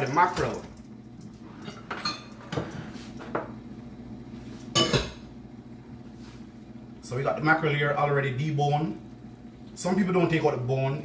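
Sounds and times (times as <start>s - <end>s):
dishes and utensils clinking: 4.8s - 5.2s.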